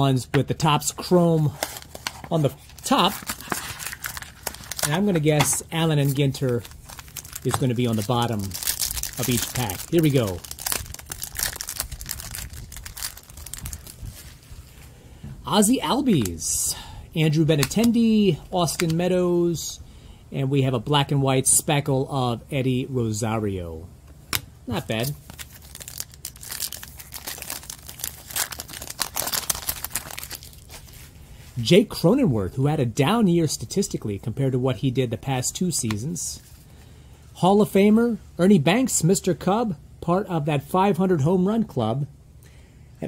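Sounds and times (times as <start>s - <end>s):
foil wrapper crinkling: 1.4s - 14.8s, 24.9s - 31.1s.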